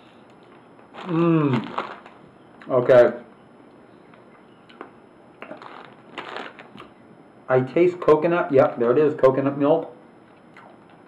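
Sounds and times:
plastic bag crinkling: 0:00.9 - 0:02.2, 0:05.4 - 0:06.9.

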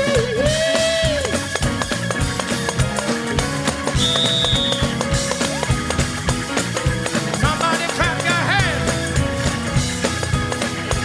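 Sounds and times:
drum beat: 0:00.0 - 0:11.0
gospel band playing: 0:00.0 - 0:11.0
held keyboard notes: 0:00.0 - 0:11.0
thin high tone: 0:04.0 - 0:05.2.

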